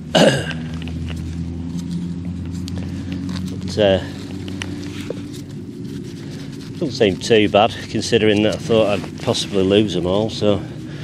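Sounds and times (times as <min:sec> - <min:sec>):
low background rumble: 0:00.0 - 0:11.0
faint taps and rustles: 0:00.8 - 0:05.6.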